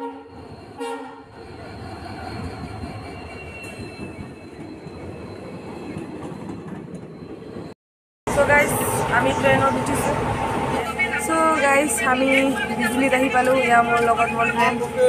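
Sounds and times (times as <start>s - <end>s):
locomotive horn blasts: 0.0s - 1.2s
train rumbling past: 0.0s - 15.0s.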